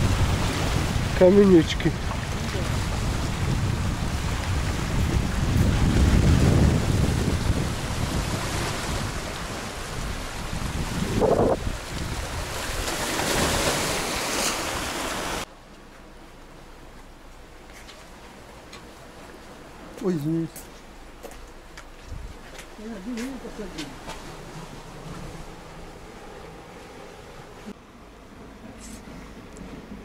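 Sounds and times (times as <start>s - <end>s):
wind buffeting microphone: 0.0s - 13.9s, 21.1s - 27.8s
sea waves splashing on rocks: 0.0s - 15.5s.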